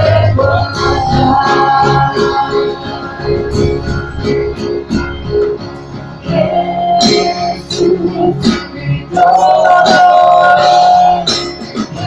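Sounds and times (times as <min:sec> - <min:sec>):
live worship band playing: 0:00.0 - 0:12.0.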